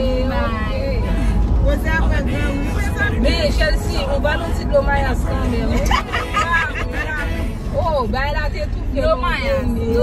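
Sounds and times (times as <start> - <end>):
car rumbling on road: 0.0 - 10.0
women talking: 0.0 - 10.0.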